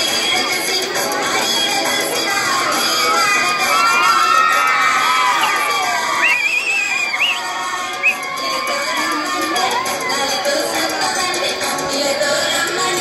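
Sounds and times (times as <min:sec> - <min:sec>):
children cheering and shouting: 0:00.1 - 0:13.0
shrill wavering cry: 0:02.8 - 0:10.4.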